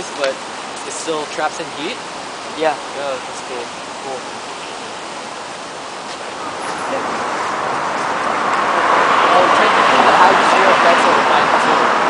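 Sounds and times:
city street traffic: 0.0 - 12.0
rushing outdoor ambience: 0.0 - 12.0.

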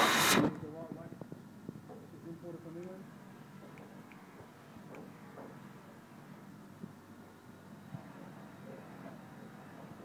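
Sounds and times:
buffing wheel rushing noise: 0.0 - 0.5.

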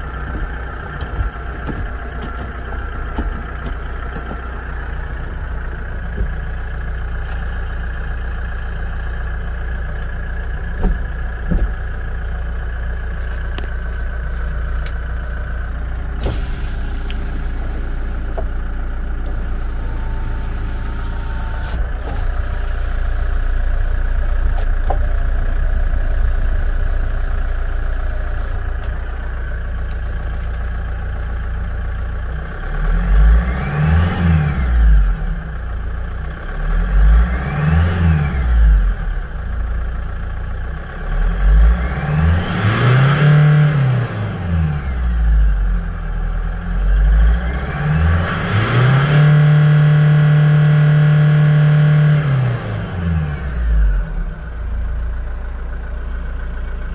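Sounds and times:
truck engine idling and revving: 0.0 - 56.9.

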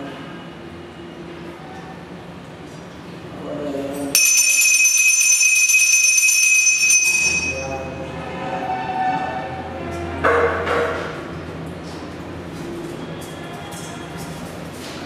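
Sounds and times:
hand bell ringing: 4.2 - 8.0.

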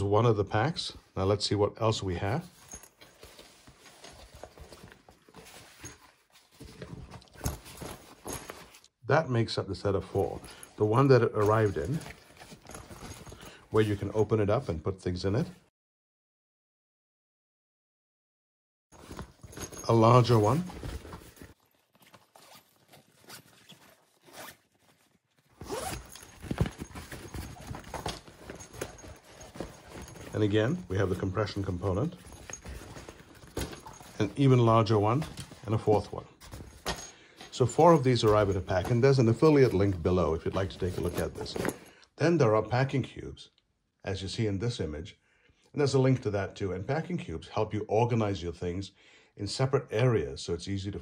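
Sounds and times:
nylon bags rustling: 2.2 - 8.9, 10.1 - 14.2, 19.0 - 41.9
zipper being pulled: 22.2 - 34.3.

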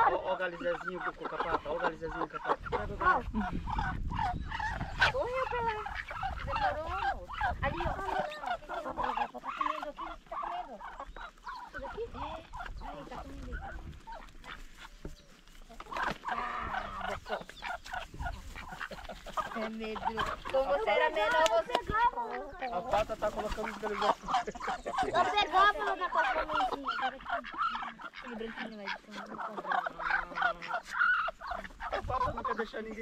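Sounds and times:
chickens clucking: 0.0 - 33.0
ducks quacking: 0.0 - 33.0.

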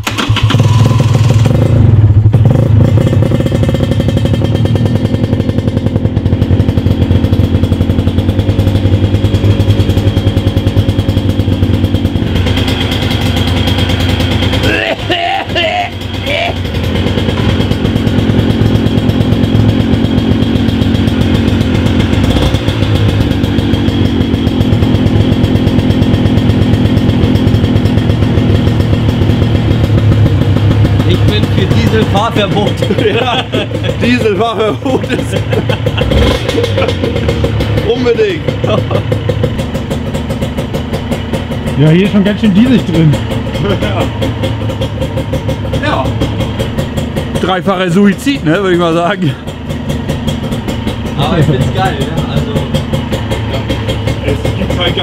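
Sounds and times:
two-stroke engine idling: 0.0 - 55.0.

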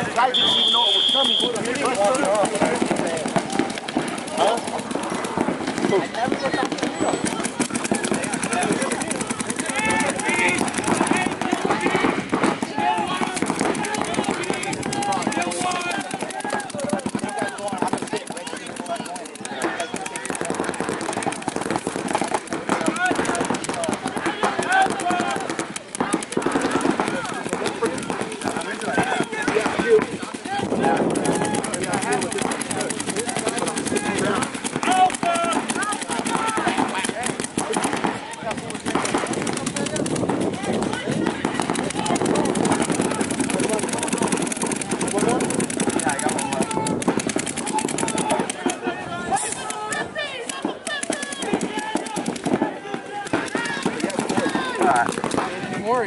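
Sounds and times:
rapid paintball marker fire: 0.0 - 56.0.

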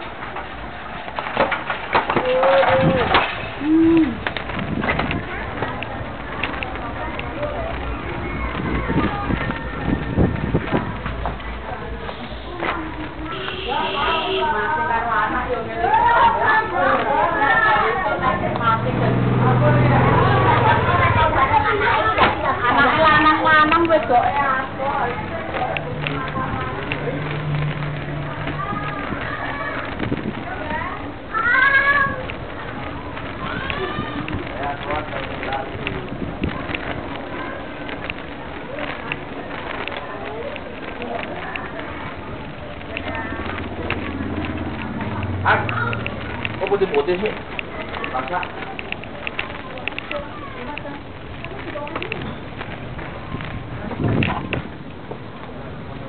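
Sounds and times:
bicycle rattling over bricks: 0.0 - 56.0
faint voices: 0.0 - 56.0
steady background noise: 0.0 - 56.0.

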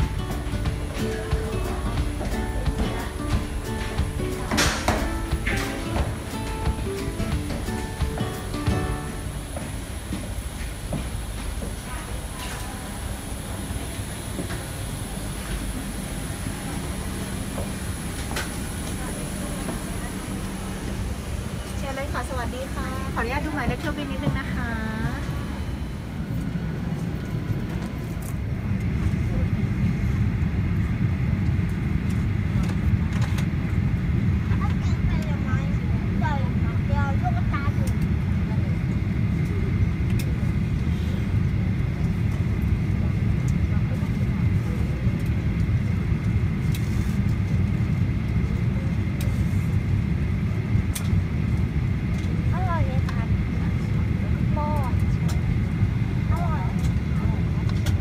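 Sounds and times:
airliner cabin rumble: 0.0 - 58.0
passengers murmuring: 0.0 - 58.0.

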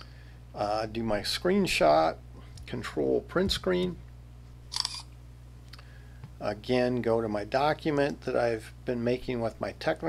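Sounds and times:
low steady hum: 0.0 - 10.0
camera shutter sound: 4.7 - 5.1.

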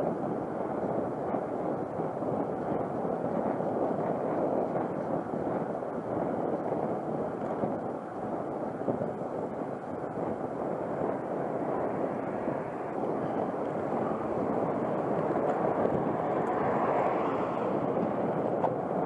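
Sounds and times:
wind rushing over microphone: 0.0 - 19.0
tyre and road noise: 11.0 - 19.0.

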